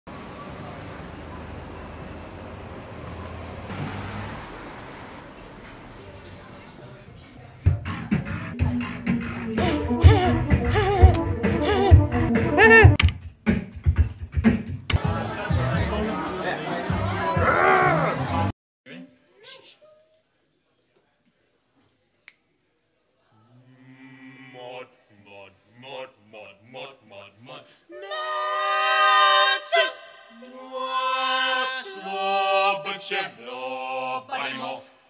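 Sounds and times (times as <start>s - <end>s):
vehicle passing: 0.1s - 7.6s
low road hum: 0.1s - 8.5s
music: 7.6s - 18.5s
man shouting: 12.5s - 13.0s.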